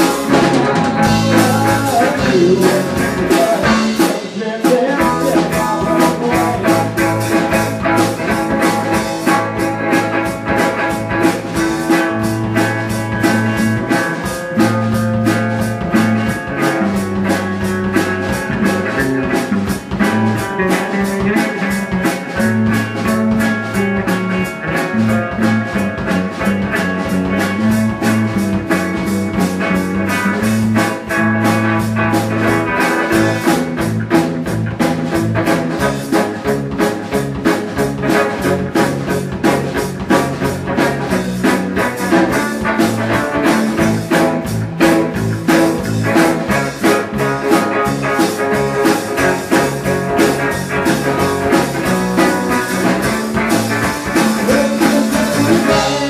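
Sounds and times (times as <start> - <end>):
drum kit fast beat: 0.0 - 56.0
electric bass: 0.0 - 56.0
electric guitar: 0.0 - 56.0.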